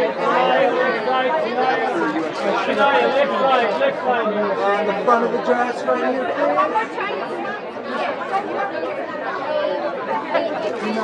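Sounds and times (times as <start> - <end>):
many voices talking over one another: 0.0 - 11.0.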